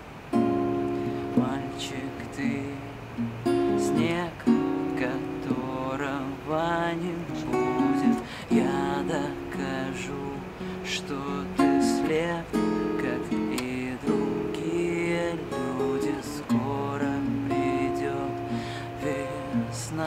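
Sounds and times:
acoustic guitar playing: 0.0s - 20.0s
man singing: 1.0s - 3.0s, 3.6s - 20.0s.

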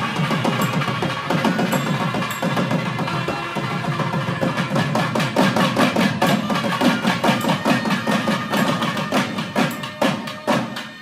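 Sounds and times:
barrel drums playing fast strokes: 0.0s - 11.0s.

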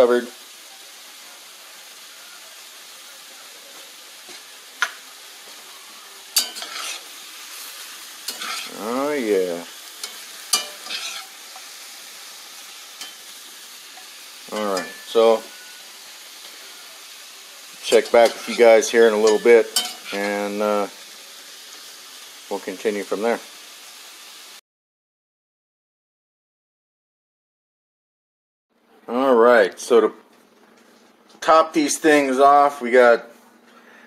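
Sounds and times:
shrimp sizzling in a skillet: 0.0s - 24.6s
utensil scraping a pan: 6.4s - 9.0s, 10.0s - 11.8s, 17.8s - 20.4s.

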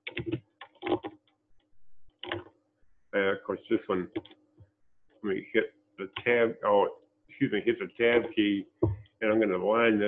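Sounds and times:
computer clicking: 0.0s - 2.6s, 4.1s - 4.4s.

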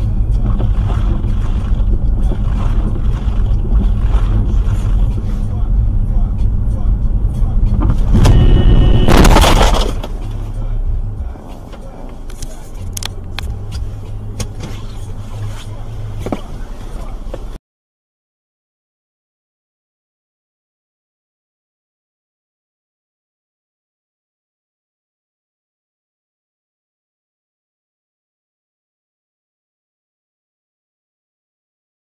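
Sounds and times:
car engine and road rumble: 0.0s - 17.6s
car horn: 7.8s - 10.2s
loud noisy burst: 8.0s - 10.0s.

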